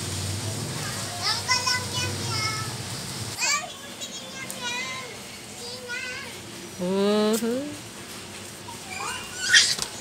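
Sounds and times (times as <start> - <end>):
child babbling and calling out: 8.7 - 9.8.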